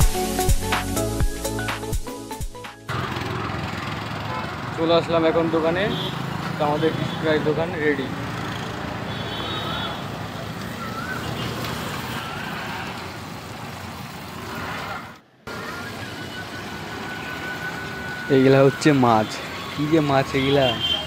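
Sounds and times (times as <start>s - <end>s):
passing cars and scooters: 2.8s - 21.0s.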